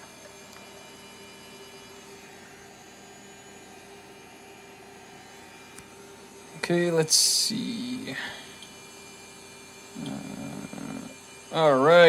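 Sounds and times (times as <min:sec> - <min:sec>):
electronic device humming: 0:00.0 - 0:12.0.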